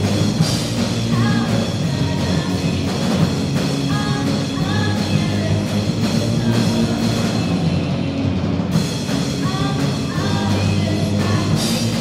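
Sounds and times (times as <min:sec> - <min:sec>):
drum kit: 0:00.0 - 0:12.0
live rock band playing: 0:00.0 - 0:12.0
person singing: 0:09.4 - 0:12.0.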